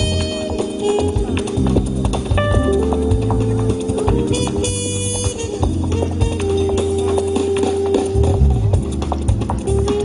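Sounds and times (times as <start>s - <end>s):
bass line: 0.0s - 10.0s
drums with woody clicking strokes: 0.0s - 10.0s.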